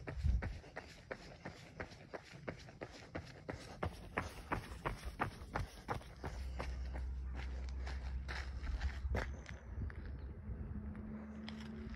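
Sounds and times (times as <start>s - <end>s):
footsteps on road: 0.0s - 10.4s, 11.0s - 11.9s.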